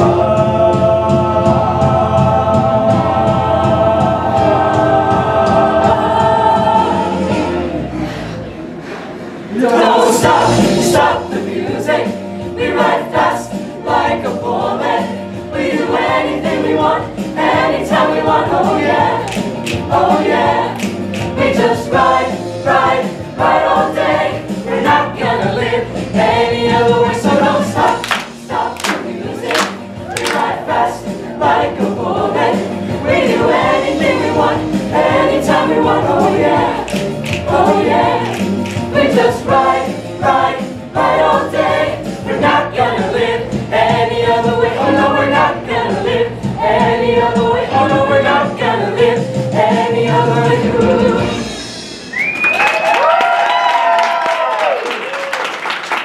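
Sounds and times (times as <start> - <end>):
choir singing: 0.0 - 7.9, 9.4 - 51.7.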